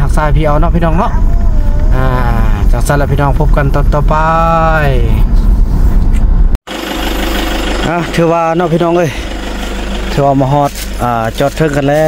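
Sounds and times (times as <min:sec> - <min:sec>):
engine hum: 0:00.0 - 0:12.0
vehicle rumble on dirt road: 0:00.0 - 0:12.0.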